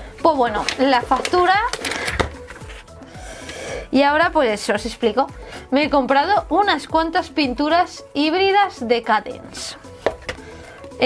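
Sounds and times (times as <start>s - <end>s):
paper rustling: 0.5s - 2.9s.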